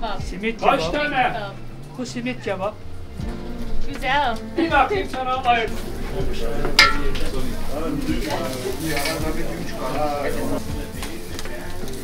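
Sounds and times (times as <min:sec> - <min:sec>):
skewers sizzling over charcoal: 0:00.0 - 0:12.0.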